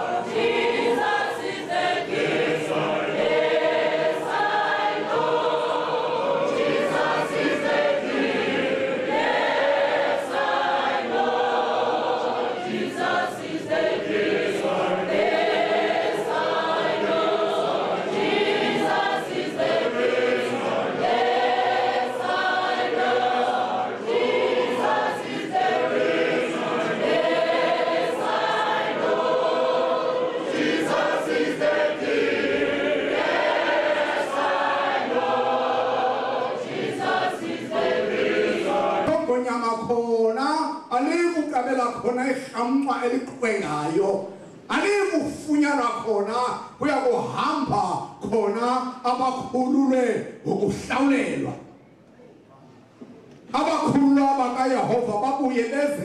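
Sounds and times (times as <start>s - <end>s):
choir singing a hymn: 0.0s - 39.8s.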